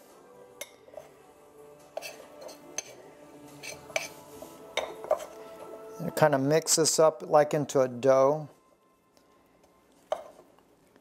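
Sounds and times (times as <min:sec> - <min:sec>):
faint background music: 0:00.0 - 0:11.0
metal spoon clinking on dish: 0:04.8 - 0:05.3.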